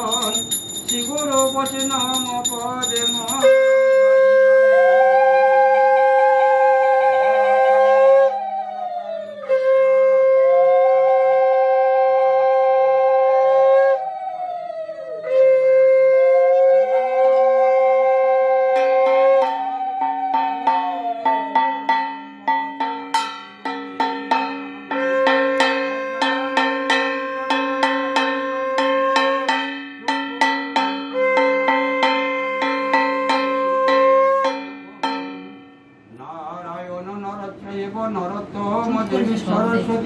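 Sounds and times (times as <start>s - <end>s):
hand-held brass gong struck: 0.0s - 4.1s, 18.7s - 36.2s
wavering higher tone: 0.0s - 4.5s, 16.8s - 36.1s
conch shell blast: 18.0s - 36.1s.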